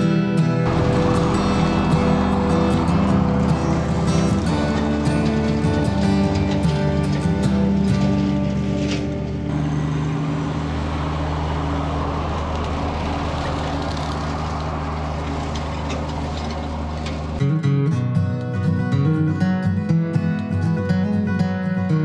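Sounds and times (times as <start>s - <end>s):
acoustic guitar strumming: 0.0s - 11.7s, 14.0s - 22.0s
tractor diesel engine running: 0.6s - 17.4s
rotary cutter mowing weeds: 0.7s - 17.4s.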